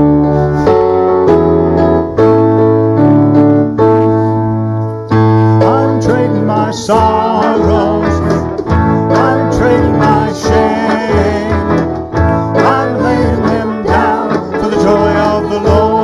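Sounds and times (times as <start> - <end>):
bass line: 0.0 - 16.0
keyboard chords: 0.0 - 16.0
people singing: 5.6 - 16.0.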